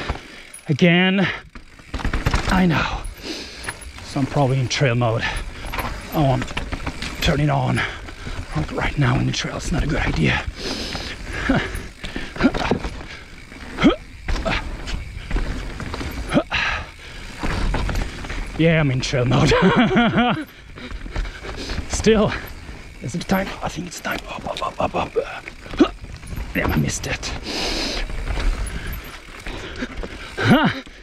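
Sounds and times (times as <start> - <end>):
bike knocks and rattles: 0.0 - 31.0
bike tyres rolling on dirt: 0.0 - 31.0.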